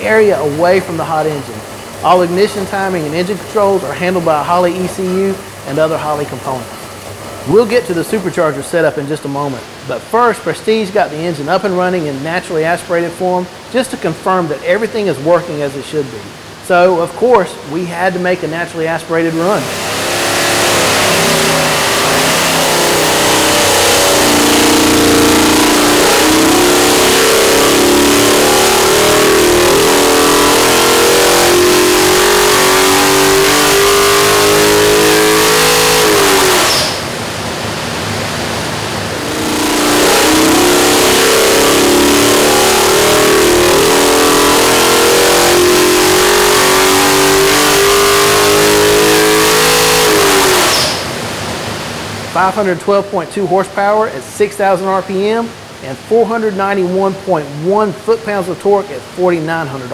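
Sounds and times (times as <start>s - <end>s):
engine revving at full throttle: 0.0s - 8.4s, 18.5s - 51.8s.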